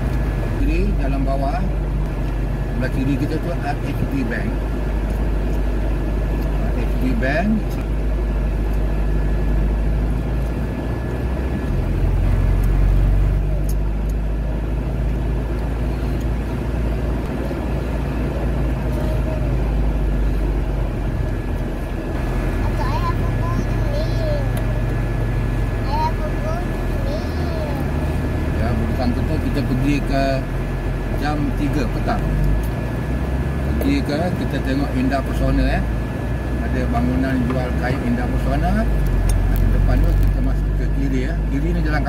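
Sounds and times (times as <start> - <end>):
engine and road rumble in car: 0.0 - 42.0.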